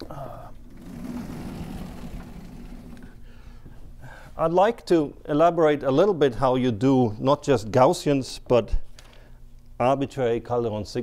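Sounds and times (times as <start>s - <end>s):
chalkboard panels sliding rumble: 0.7s - 3.2s.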